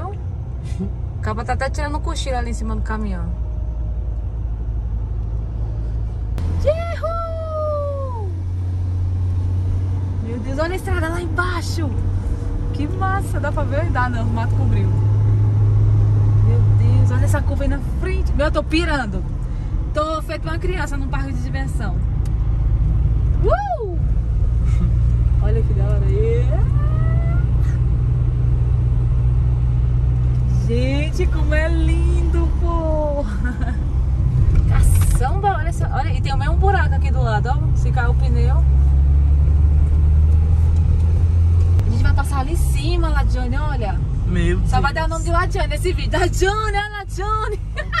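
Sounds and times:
car engine and tyres rumbling: 0.0 - 48.0
woman cheering: 6.6 - 8.4, 23.4 - 24.0
woman's long high exclamation: 6.7 - 8.4.

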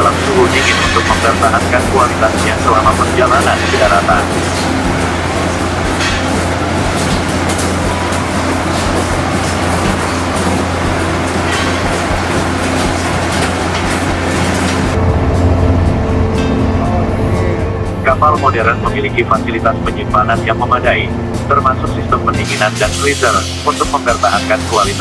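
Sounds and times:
fish-processing machinery running: 0.0 - 25.0
low mechanical hum: 0.0 - 25.0.

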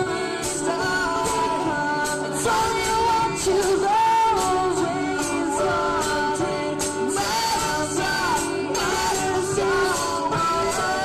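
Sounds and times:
live folk-rock band playing: 0.0 - 11.0
voices singing held notes: 0.0 - 11.0.

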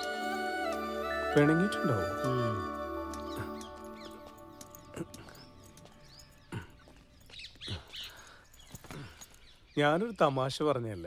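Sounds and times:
soft background music: 0.0 - 7.2
bird chirps: 1.1 - 11.0.

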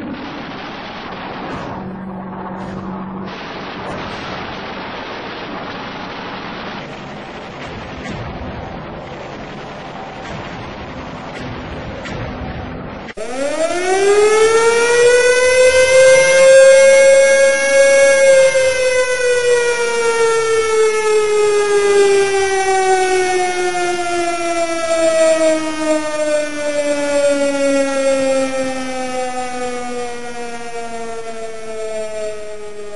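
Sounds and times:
air-raid siren winding down: 0.0 - 8.2, 13.0 - 32.9.

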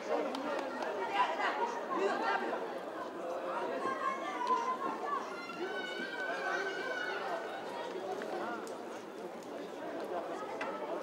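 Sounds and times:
many overlapping voices outdoors: 0.0 - 11.0.

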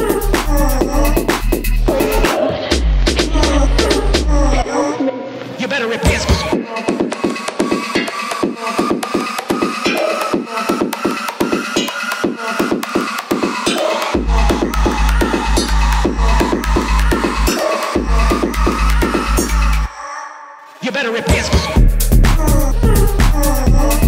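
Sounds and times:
fast electronic drum beat: 0.0 - 4.5, 6.0 - 19.9, 21.3 - 24.0
heavy sub-bass: 0.0 - 4.7, 14.2 - 19.9, 21.4 - 24.0.

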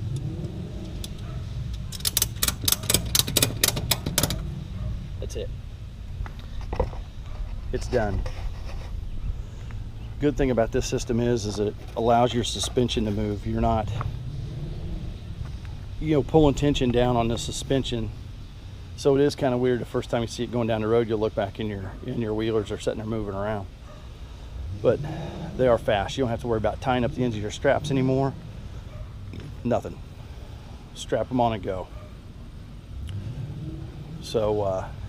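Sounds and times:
low steady rumble: 0.0 - 35.0
strap ratchet clicking: 0.9 - 4.4.

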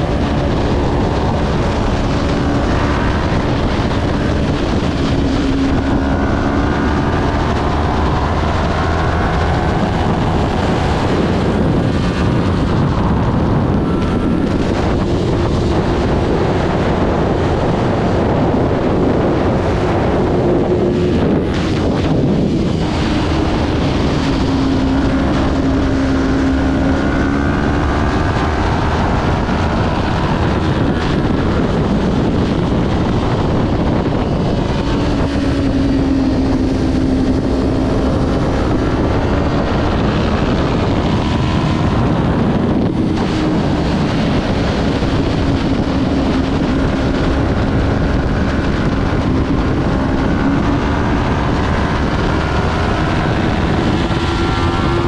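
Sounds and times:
motorcycle engine revving: 0.0 - 55.0
wind noise on microphone: 0.0 - 55.0.

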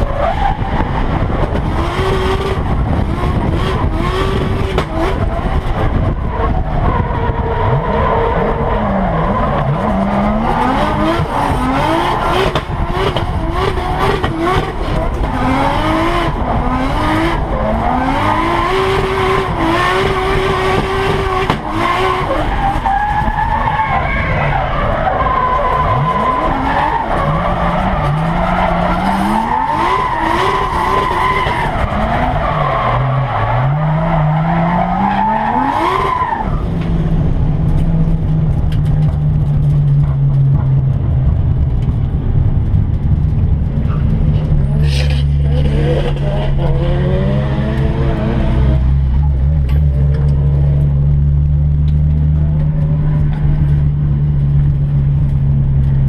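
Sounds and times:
tyres skidding and squealing: 3.5 - 36.9, 43.8 - 51.3
car engine revving hard: 9.3 - 22.8, 44.8 - 50.9.

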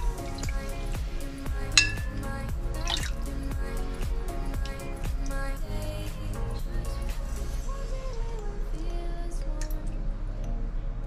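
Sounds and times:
music with a steady beat: 0.0 - 7.8
water splashing and dripping: 0.0 - 9.8.

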